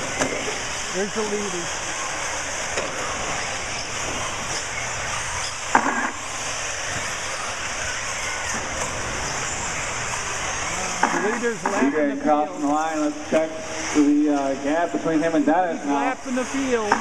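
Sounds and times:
high-pitched whir of rc car motors: 0:00.0 - 0:17.0.

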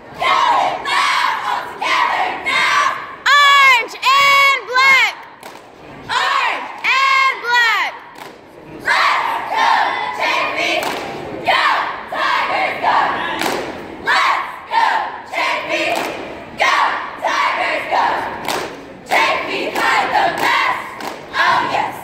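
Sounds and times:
cheerleaders shouting in unison: 0:00.1 - 0:05.2, 0:06.0 - 0:08.1, 0:11.4 - 0:18.4, 0:19.1 - 0:22.0.

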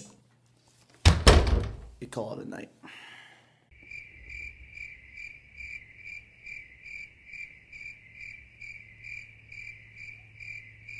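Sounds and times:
cricket chirping: 0:03.7 - 0:10.9.

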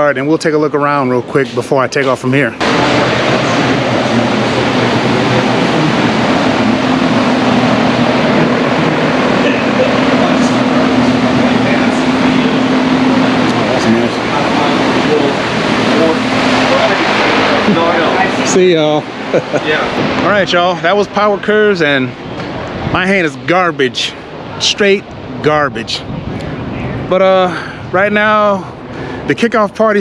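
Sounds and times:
loud machine noise: 0:00.0 - 0:30.0
low hum: 0:02.4 - 0:29.3.

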